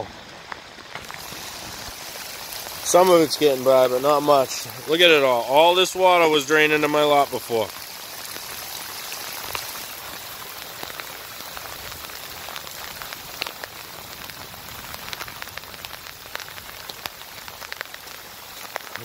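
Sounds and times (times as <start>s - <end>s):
heavy rain falling: 0.0s - 19.0s.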